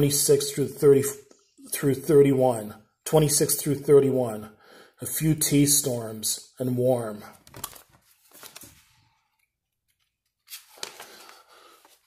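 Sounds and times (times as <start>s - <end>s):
paper page rustling: 7.4s - 9.3s, 9.9s - 12.0s.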